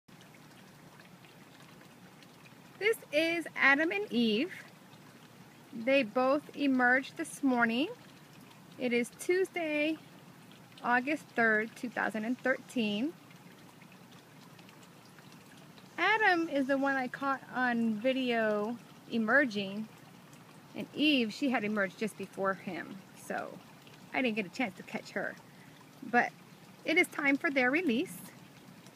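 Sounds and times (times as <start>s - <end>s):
faint background hiss: 0.1s - 28.9s.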